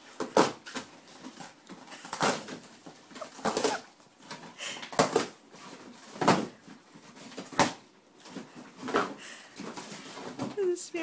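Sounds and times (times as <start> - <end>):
cardboard ripping and crackling: 0.0 - 9.0
dog chewing cardboard: 0.1 - 8.9.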